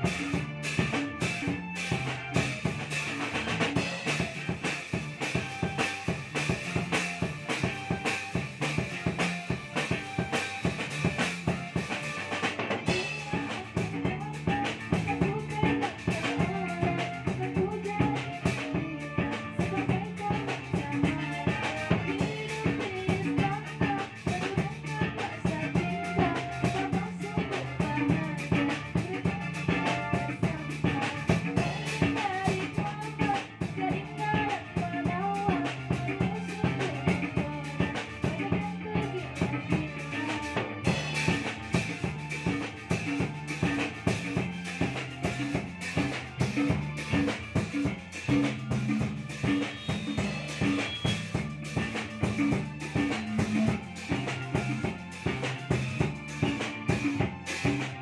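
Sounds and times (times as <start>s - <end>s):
drum kit steady beat: 0.0s - 58.0s
electronic keyboard: 0.0s - 58.0s
guitar: 0.0s - 58.0s
small band playing: 0.0s - 58.0s
person singing into a microphone: 12.9s - 40.9s
hand drum: 12.9s - 58.0s.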